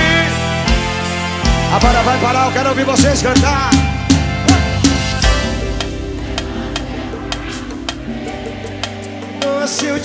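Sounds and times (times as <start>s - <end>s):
live band held low chord: 0.0s - 10.0s.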